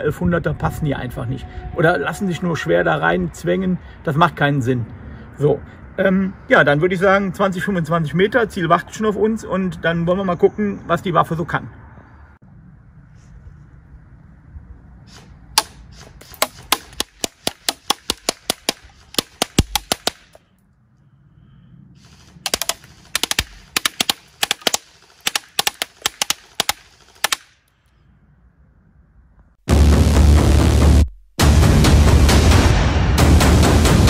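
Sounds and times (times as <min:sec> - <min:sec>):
airsoft rifle shots: 0:15.5 - 0:20.4, 0:22.4 - 0:27.6
loud electronic music: 0:29.7 - 0:34.0.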